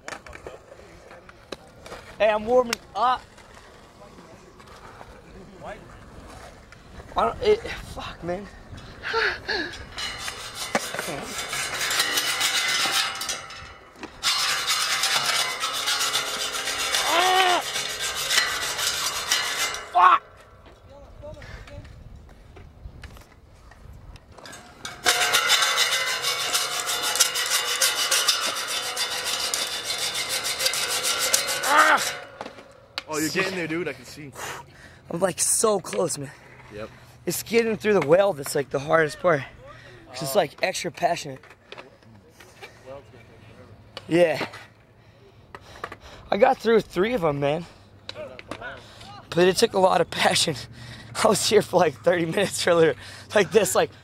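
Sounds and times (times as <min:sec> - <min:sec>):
hacksaw cutting steel: 0:10.0 - 0:20.1, 0:24.5 - 0:32.6.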